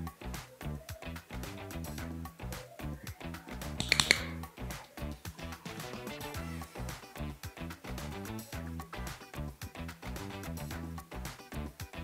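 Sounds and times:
background music: 0:00.0 - 0:12.0
dog-training clicker clicks: 0:03.8 - 0:04.4.

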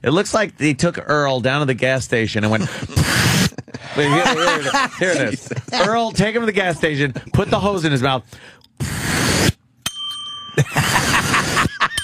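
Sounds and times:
laughter: 0:02.6 - 0:07.7, 0:10.6 - 0:12.0
bell ding: 0:09.8 - 0:10.7.

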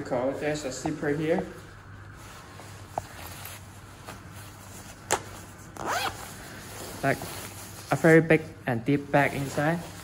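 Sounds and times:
fabric handling: 0:00.0 - 0:10.0
zipper zipping: 0:05.8 - 0:06.3.

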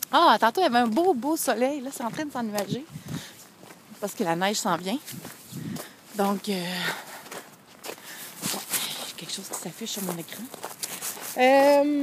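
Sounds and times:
footsteps on snow: 0:00.2 - 0:12.0.

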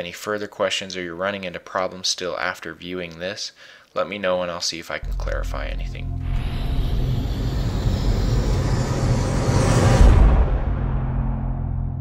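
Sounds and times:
impact hit: 0:05.0 - 0:12.0
low rumble: 0:05.0 - 0:12.0
rushing noise: 0:06.1 - 0:12.0.

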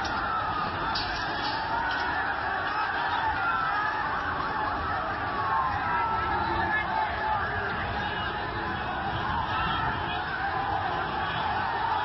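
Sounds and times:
crowd din in the street: 0:00.0 - 0:12.0
vehicle sirens wailing: 0:00.0 - 0:12.0.

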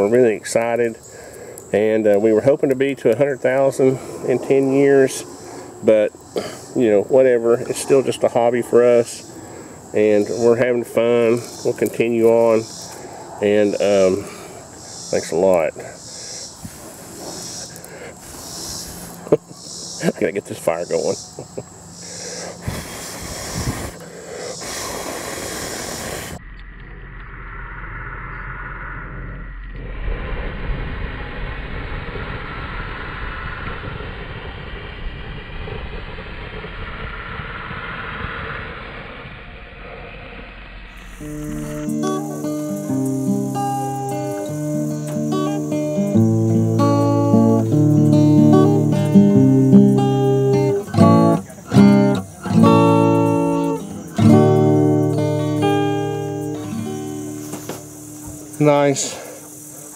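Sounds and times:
steady hiss of fire: 0:00.0 - 0:26.4, 0:29.8 - 0:59.9
acoustic guitar music: 0:41.0 - 0:59.7.

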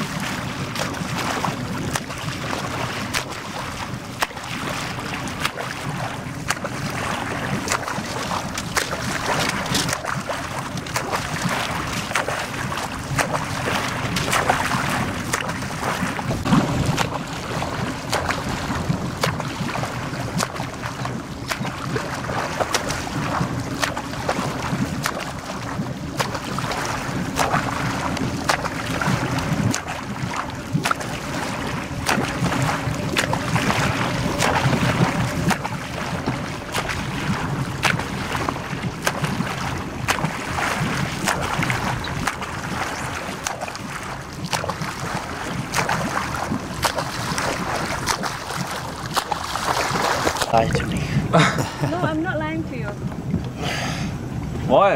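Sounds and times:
swimming strokes splashing: 0:00.0 - 0:54.4
motorboat engine humming: 0:00.0 - 0:54.9.

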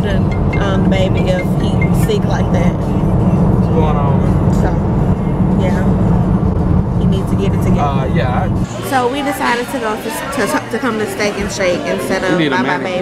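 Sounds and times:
car cabin road rumble: 0:00.0 - 0:08.7
restaurant chatter: 0:00.0 - 0:13.0.

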